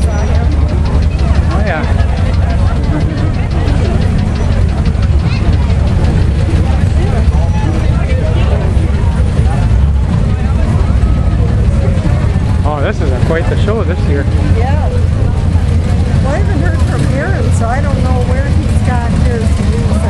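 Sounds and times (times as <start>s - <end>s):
car engines idling: 0.0s - 20.0s
crowd chatter: 0.0s - 20.0s.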